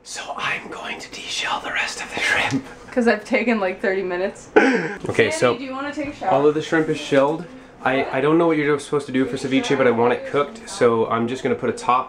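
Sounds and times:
person whispering: 0.0s - 2.6s.

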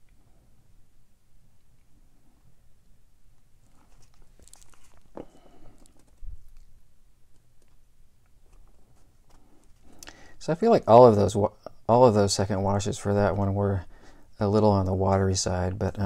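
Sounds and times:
paper rustling: 3.6s - 10.0s.

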